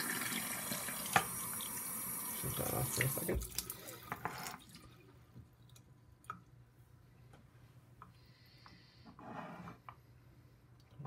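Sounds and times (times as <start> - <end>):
tap water trickling: 0.0 - 6.4
water dripping: 0.0 - 6.6.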